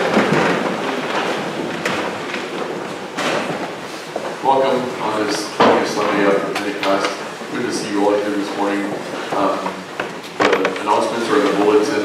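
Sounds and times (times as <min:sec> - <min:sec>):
man speaking in reverberant room: 0:04.2 - 0:12.0.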